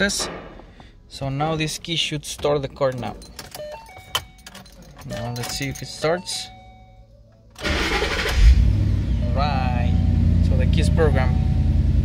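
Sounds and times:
car engine cranking and starting: 7.5 - 12.0
car engine idling: 7.6 - 12.0.

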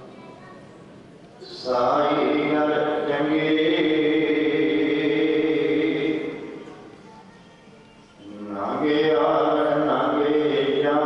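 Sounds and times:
man chanting prayer: 1.4 - 6.6, 8.3 - 11.0.

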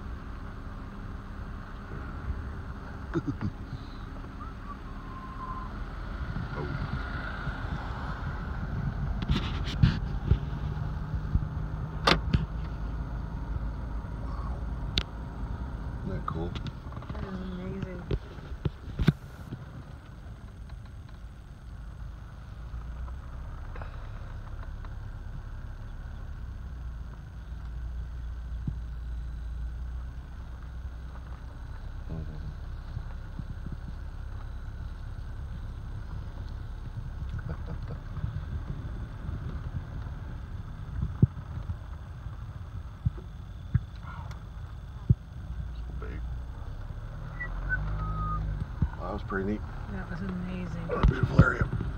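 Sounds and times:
car rumble inside cabin: 0.0 - 51.9.

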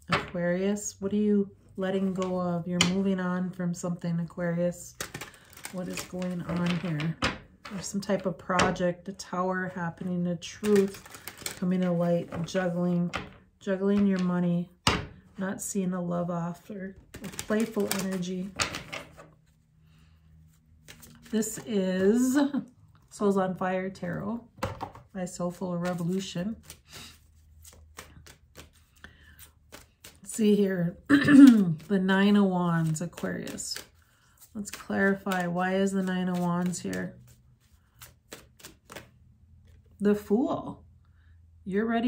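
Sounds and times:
cards clicking and tapping: 4.9 - 8.0, 10.5 - 14.3, 17.1 - 19.3, 25.8 - 26.8, 27.6 - 30.5, 31.5 - 39.9.

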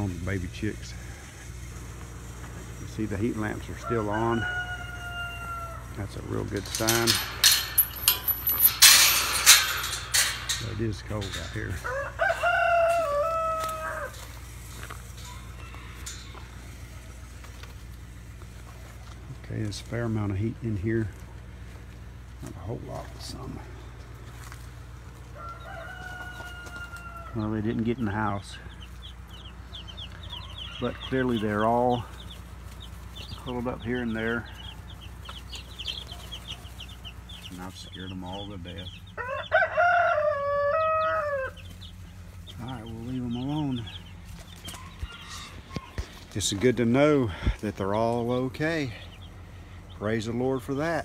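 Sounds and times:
steady low hum: 0.0 - 26.3
baby chicks peeping: 0.0 - 51.0
rooster crowing: 3.5 - 8.6, 10.4 - 17.6, 25.2 - 27.5, 39.1 - 41.9, 44.6 - 46.2.

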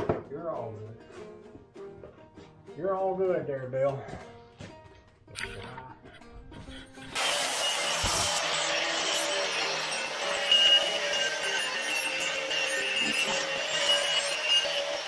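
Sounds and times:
angle grinder grinding metal: 6.6 - 15.0.

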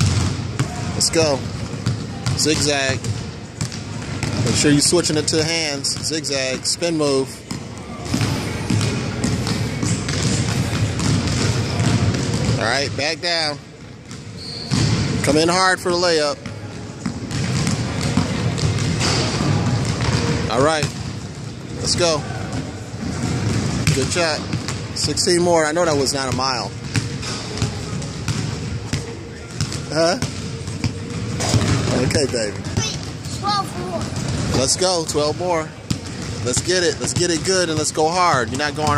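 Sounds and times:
basketball bouncing on hardwood: 7.5 - 12.6, 16.4 - 21.0.

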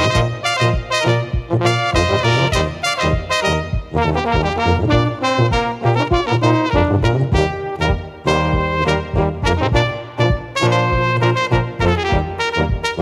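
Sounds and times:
bass drum beat: 0.0 - 13.0
brass quartet playing: 0.0 - 13.0.

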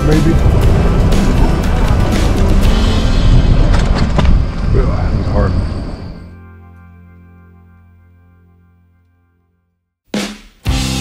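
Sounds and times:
wind buffeting microphone: 0.0 - 6.3
low rumble: 0.0 - 6.4.

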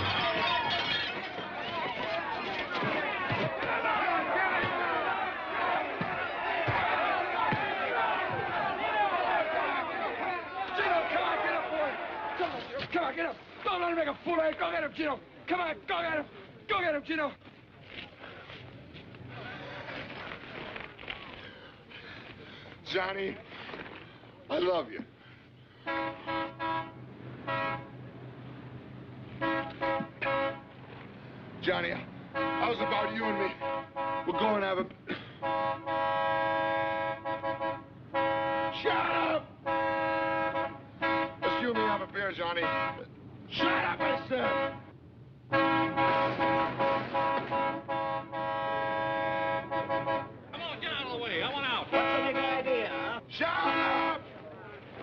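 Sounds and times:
crowd shouting: 0.0 - 14.9, 35.7 - 42.0, 43.5 - 44.6, 49.6 - 54.8
car horn honking: 25.8 - 28.1, 29.3 - 30.9, 32.3 - 54.4.

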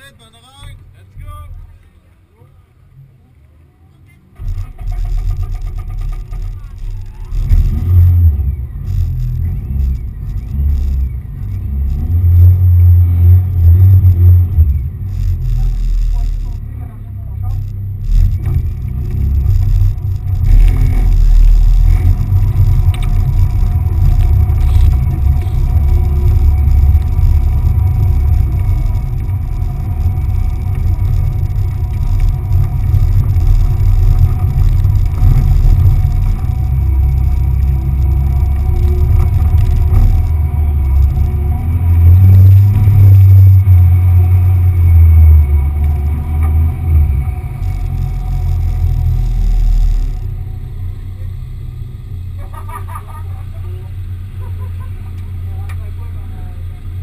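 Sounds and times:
car engine starting and revving: 4.3 - 57.0.

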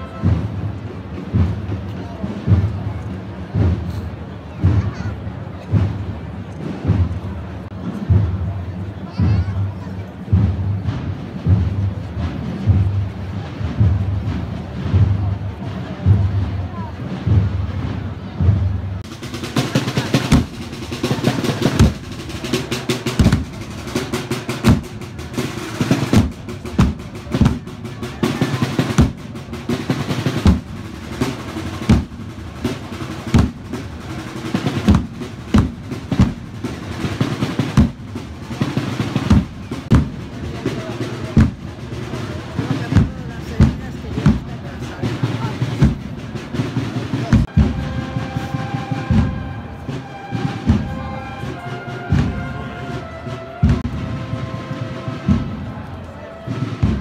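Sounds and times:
bass drum strokes: 0.0 - 57.0
snare drum rolls: 0.0 - 57.0.

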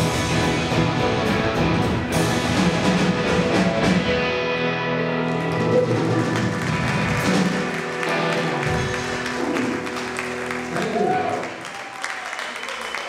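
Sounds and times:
live rock band playing: 0.0 - 11.7.

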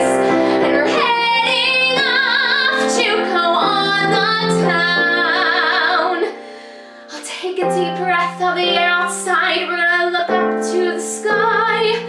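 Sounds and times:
woman singing with vibrato: 0.0 - 6.4, 7.1 - 12.0
musical accompaniment: 0.0 - 12.0.

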